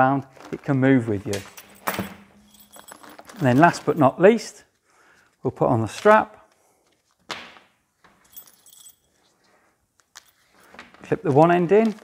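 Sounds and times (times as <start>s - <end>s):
strap clips clinking and rattling: 1.3s - 4.1s.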